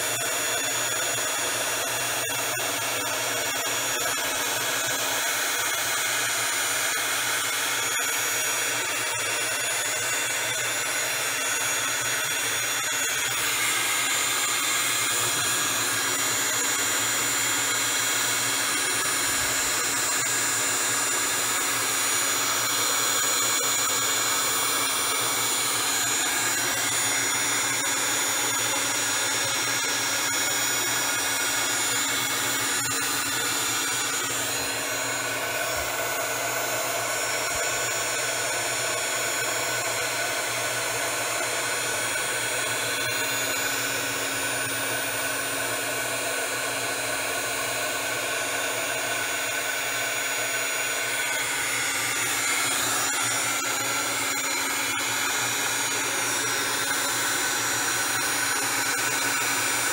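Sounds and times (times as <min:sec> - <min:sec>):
heat tool fan blowing with whine: 0:00.0 - 0:59.9.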